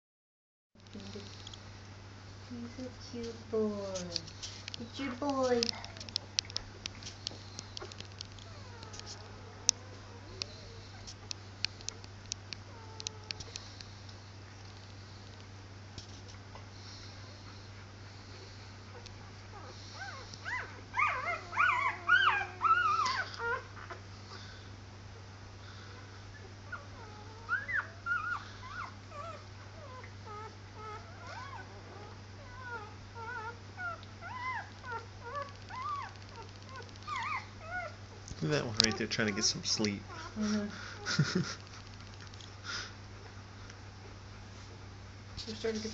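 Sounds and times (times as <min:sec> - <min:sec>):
steady low hum: 0:00.8 - 0:45.9
puppies whimpering: 0:07.6 - 0:11.2, 0:18.9 - 0:24.0, 0:25.8 - 0:41.3.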